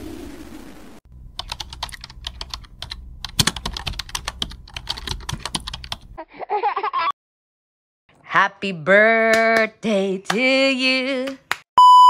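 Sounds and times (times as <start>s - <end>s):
computer keyboard typing: 1.4s - 6.0s.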